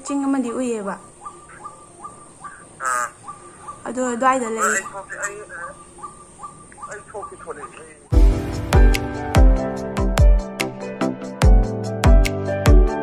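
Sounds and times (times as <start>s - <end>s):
woman's voice: 0.0s - 1.1s, 3.8s - 5.7s
bird calling in falling calls: 0.0s - 8.1s.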